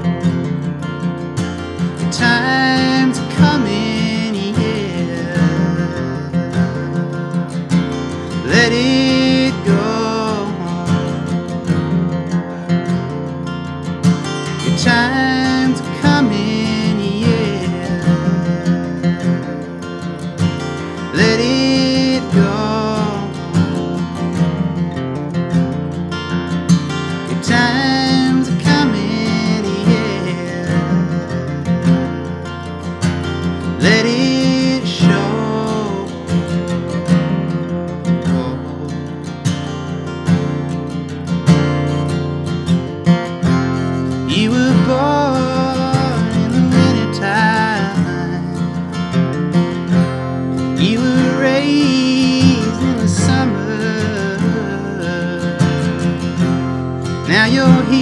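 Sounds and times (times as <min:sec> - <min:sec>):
acoustic guitar strummed and picked: 0:00.0 - 0:58.0
man singing wordlessly: 0:01.7 - 0:25.7, 0:26.8 - 0:39.6, 0:43.0 - 0:58.0.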